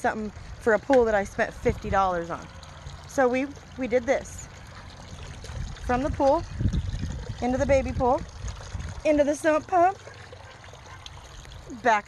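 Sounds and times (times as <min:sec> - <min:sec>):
water from hose splashing: 0:00.0 - 0:12.0.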